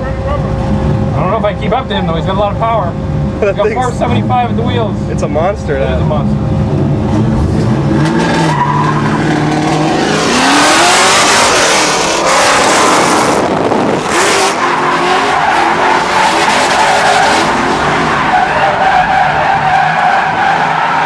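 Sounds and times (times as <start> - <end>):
car engine revving: 0.0 - 21.0
tyres skidding and squealing: 0.0 - 21.0.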